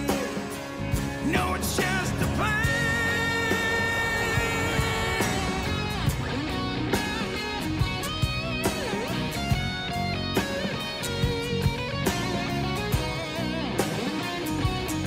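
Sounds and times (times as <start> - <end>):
rock music with electric guitar: 0.0 - 15.0.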